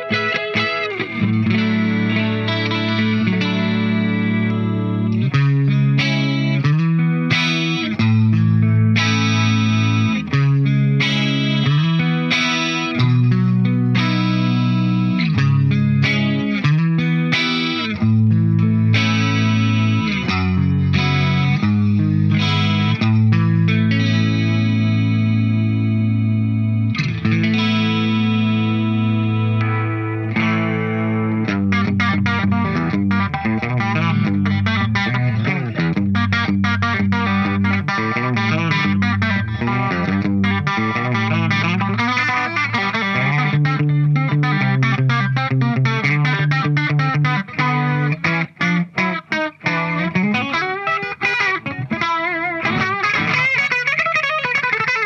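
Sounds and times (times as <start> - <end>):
electric guitar with chorus: 0.0 - 55.0.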